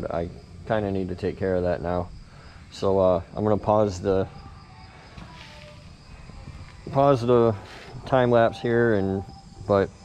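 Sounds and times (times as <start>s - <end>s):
faint high-pitched hum: 0.0s - 10.0s.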